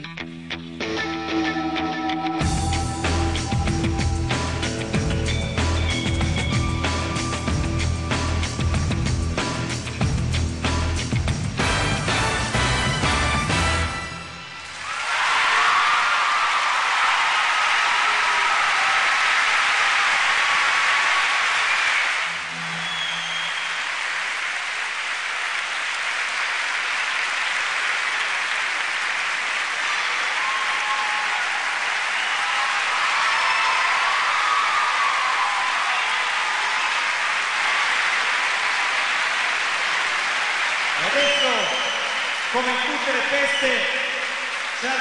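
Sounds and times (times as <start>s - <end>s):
arena audience applauding: 10.8s - 45.0s.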